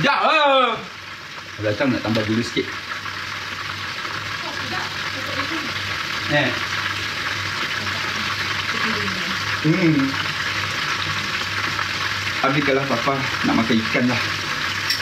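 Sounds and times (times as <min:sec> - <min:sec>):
hot oil sizzling: 0:00.0 - 0:15.0.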